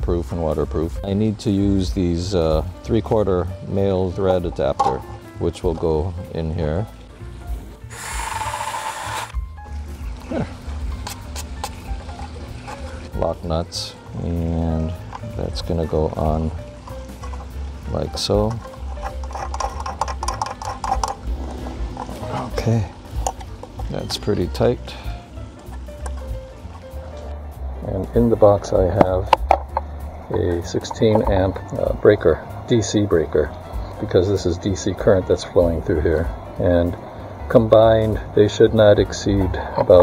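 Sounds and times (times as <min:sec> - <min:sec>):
soft sustained music notes: 0:00.0 - 0:40.0
drill boring through plastic: 0:07.9 - 0:09.4
low steady rumble: 0:09.3 - 0:39.6.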